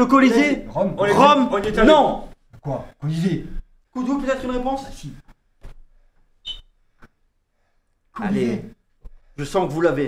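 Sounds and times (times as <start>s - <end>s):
short high chirp: 6.4s - 6.8s.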